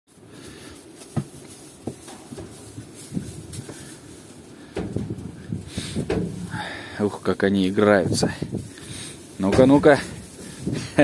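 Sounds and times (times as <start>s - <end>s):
hoof thuds on straw: 0.1s - 11.0s.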